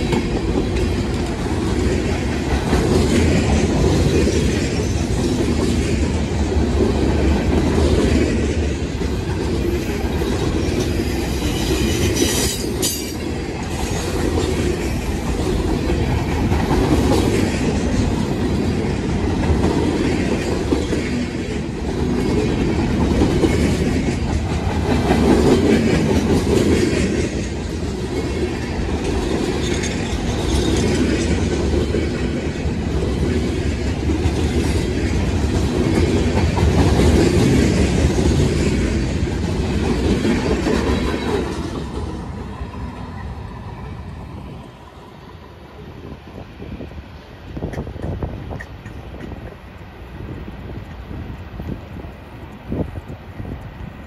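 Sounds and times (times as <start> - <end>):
steel wheels clattering on rails: 0.0 - 43.4
freight train rolling past: 0.0 - 54.0.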